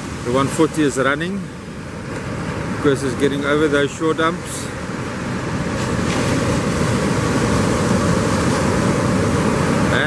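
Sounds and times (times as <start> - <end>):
ocean surf breaking: 0.0 - 10.0.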